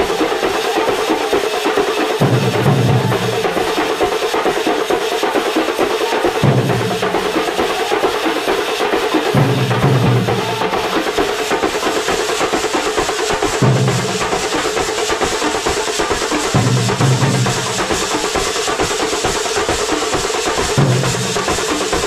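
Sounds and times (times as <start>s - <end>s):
drum band playing fast rhythm: 0.0s - 22.0s.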